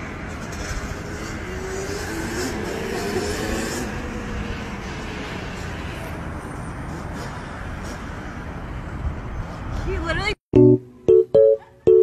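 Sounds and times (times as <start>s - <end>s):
small vehicle engine drone: 0.0s - 8.9s
street noise: 0.0s - 12.0s.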